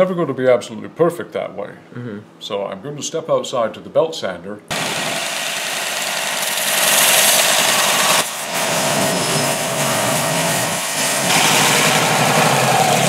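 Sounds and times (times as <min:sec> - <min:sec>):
belt sander sanding leather: 0:04.7 - 0:13.0.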